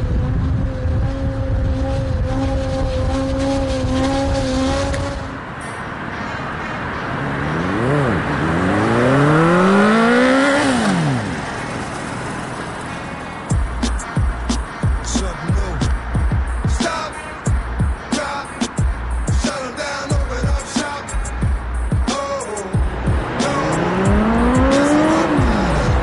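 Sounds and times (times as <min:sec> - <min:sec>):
sport bike engine revving: 0:00.0 - 0:05.4, 0:07.4 - 0:12.7, 0:21.4 - 0:26.0
music: 0:13.5 - 0:26.0.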